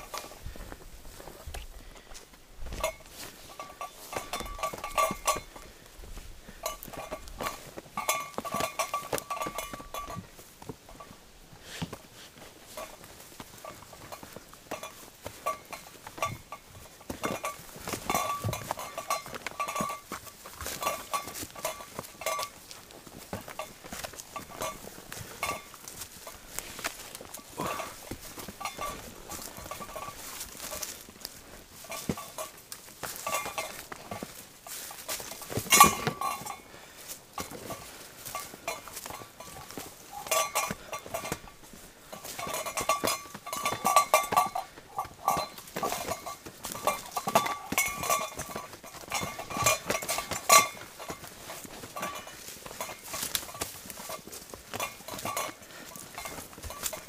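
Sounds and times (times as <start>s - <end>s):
footsteps through undergrowth: 0.0s - 57.0s
metal gear jingling: 2.7s - 5.7s, 6.5s - 11.2s, 12.7s - 57.0s.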